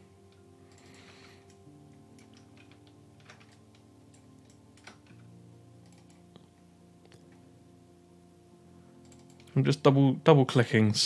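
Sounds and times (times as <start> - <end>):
faint steady hum: 0.0 - 11.0
computer mouse clicks: 5.8 - 7.4, 9.0 - 9.6.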